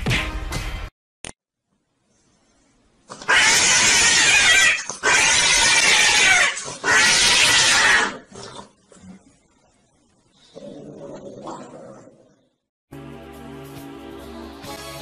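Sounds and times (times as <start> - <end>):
cat yowling harshly: 3.3 - 8.2.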